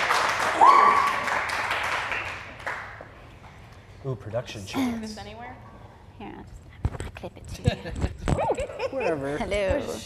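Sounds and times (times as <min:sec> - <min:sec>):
hand clapping: 0:00.0 - 0:03.1.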